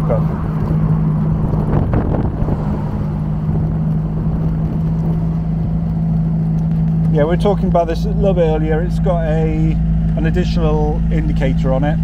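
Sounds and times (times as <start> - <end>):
rush of noise: 0.0 - 7.2
car engine humming: 0.0 - 12.0.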